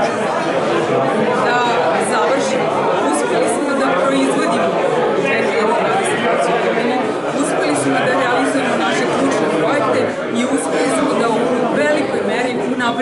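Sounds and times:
background chatter: 0.0 - 13.0.

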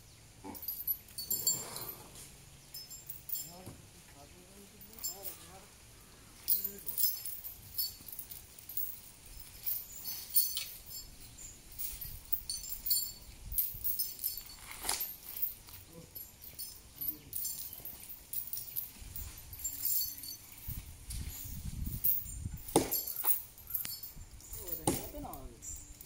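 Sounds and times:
metallic clinks and jingles: 0.4 - 26.0.

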